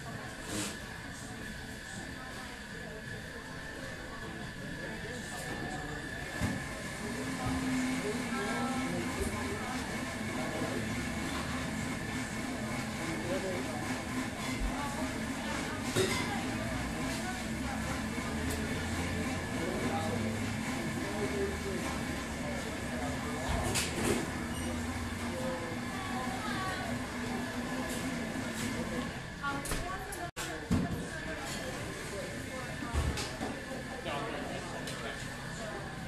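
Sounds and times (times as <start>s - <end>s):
indistinct chatter: 0.0s - 36.0s.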